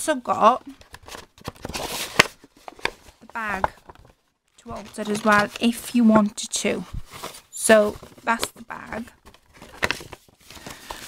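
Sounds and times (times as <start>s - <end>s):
paper bag rustling and crinkling: 0.9s - 11.0s.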